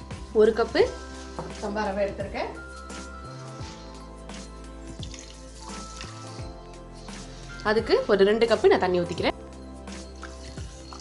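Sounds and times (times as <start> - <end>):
background music: 0.0 - 11.0
water pouring into a pot: 4.9 - 6.6.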